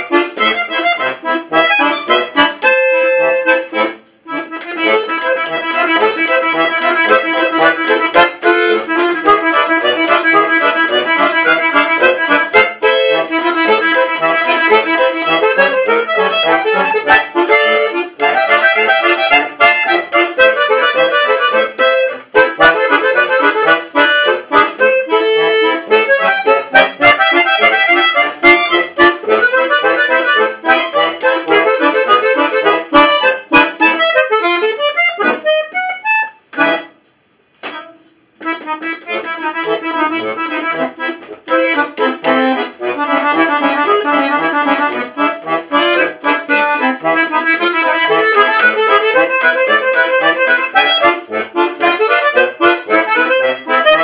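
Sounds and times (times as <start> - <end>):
button accordion playing: 0.0 - 37.0, 37.7 - 54.0.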